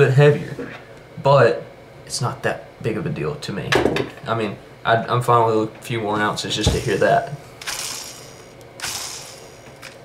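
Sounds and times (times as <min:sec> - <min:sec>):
fishing reel spool whirring whine: 0:06.8 - 0:10.0.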